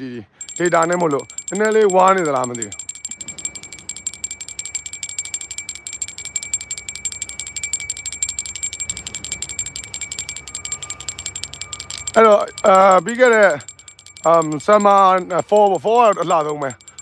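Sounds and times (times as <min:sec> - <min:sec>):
high bell-like ring: 0:00.4 - 0:17.0
rapid metallic jingling: 0:00.4 - 0:17.0.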